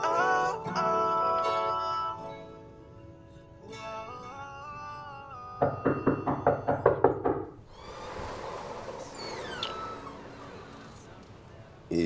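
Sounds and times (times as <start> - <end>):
rapid knocking on a door: 5.6 - 7.6.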